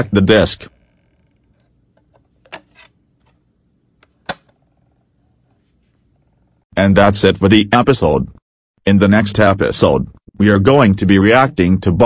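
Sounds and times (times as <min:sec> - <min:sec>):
disc lifted off spindle click: 0:01.6 - 0:03.4, 0:04.0 - 0:04.6.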